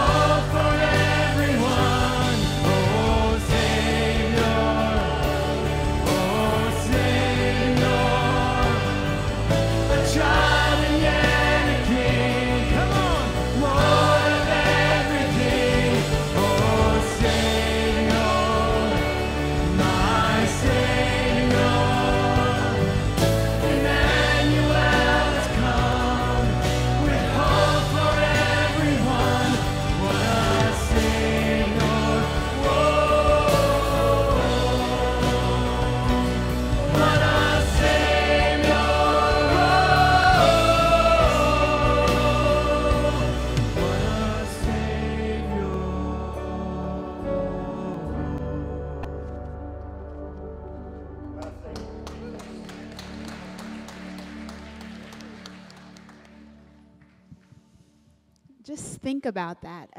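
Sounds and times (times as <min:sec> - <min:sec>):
man singing: 0:00.0 - 0:09.2, 0:09.8 - 0:20.8, 0:24.4 - 0:37.7, 0:39.4 - 0:49.5
worship band playing: 0:00.0 - 0:57.2
congregation applauding: 0:51.4 - 0:57.5.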